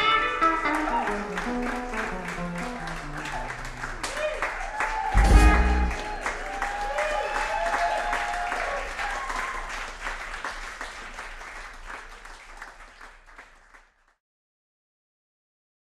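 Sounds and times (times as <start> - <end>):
audience applauding and cheering: 0.0 - 13.9.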